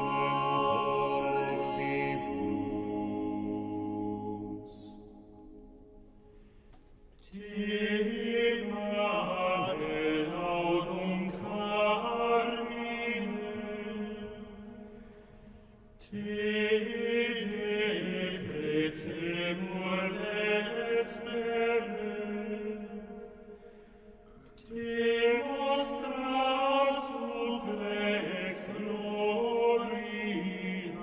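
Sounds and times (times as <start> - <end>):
early-music ensemble chant-like music: 0.0 - 31.0.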